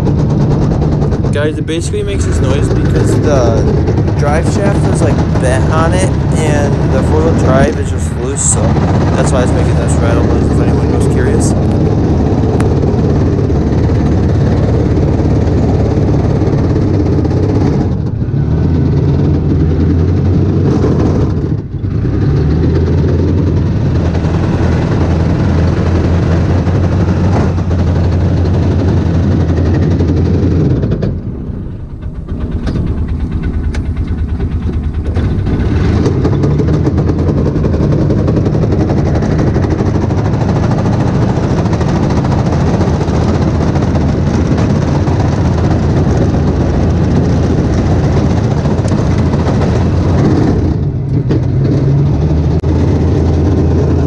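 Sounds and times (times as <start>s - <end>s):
vehicle engine running under load: 0.0s - 54.0s.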